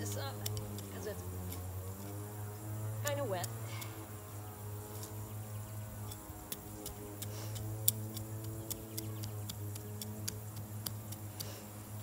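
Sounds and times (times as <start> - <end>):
trowel scraping wet soil: 0.0 - 2.2, 6.0 - 11.8
steady low hum: 0.0 - 12.0.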